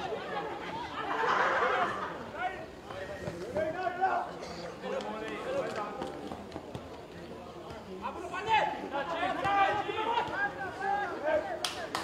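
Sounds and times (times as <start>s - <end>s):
crowd chatter and shouting: 0.0s - 12.0s.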